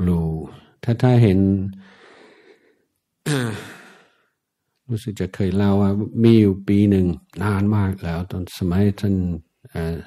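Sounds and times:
man sighing: 3.2s - 4.3s.

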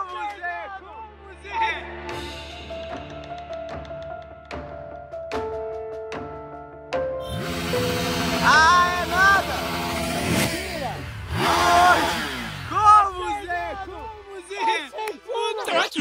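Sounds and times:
motorcycle engine revving: 7.2s - 14.3s
people shouting and whooping: 11.3s - 16.0s.

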